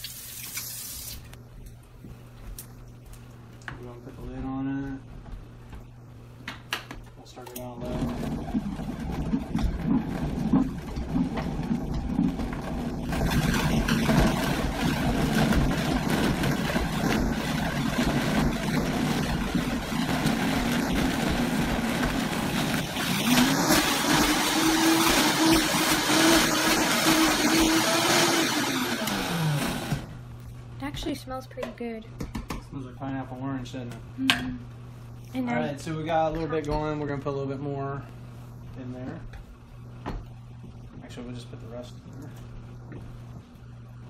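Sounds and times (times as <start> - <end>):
blender motor chopping scraps: 7.8 - 30.2.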